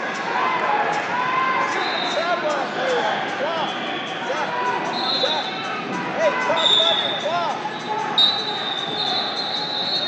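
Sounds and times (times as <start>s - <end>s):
referee whistle blasts: 4.9s - 5.5s, 6.6s - 10.0s.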